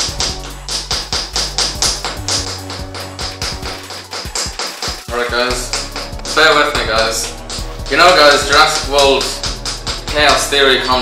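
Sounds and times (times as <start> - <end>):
wooden hammer tapping chisel: 0.0 - 10.4
background music with bass line: 0.0 - 11.0.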